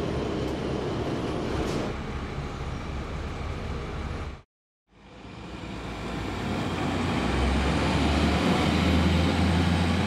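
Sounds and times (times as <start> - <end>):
bus engine idling: 0.0 - 4.4.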